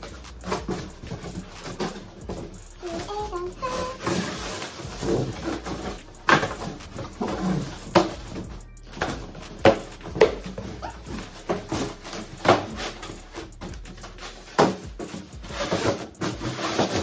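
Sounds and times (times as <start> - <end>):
cardboard flaps scraping and rustling: 14.1 - 17.0.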